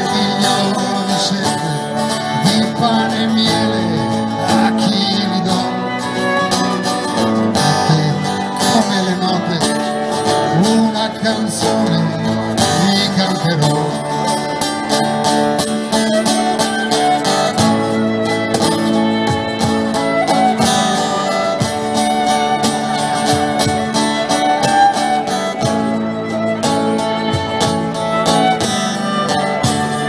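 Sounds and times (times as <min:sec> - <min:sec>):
strummed acoustic guitar: 0:00.0 - 0:30.0
violin melody: 0:00.0 - 0:30.0.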